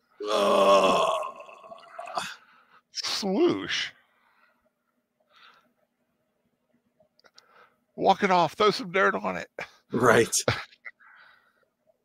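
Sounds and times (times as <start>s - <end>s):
person groaning: 0.2s - 2.4s.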